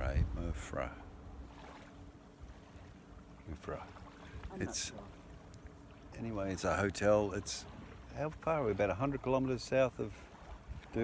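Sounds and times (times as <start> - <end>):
wind rumbling on microphone: 0.0 - 1.0, 10.3 - 11.0
faint steady hum: 0.0 - 11.0.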